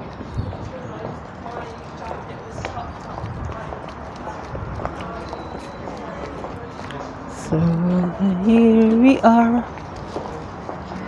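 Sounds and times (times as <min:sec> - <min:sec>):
faint indistinct voices: 0:00.0 - 0:11.0
footsteps on brick paving: 0:00.0 - 0:11.0.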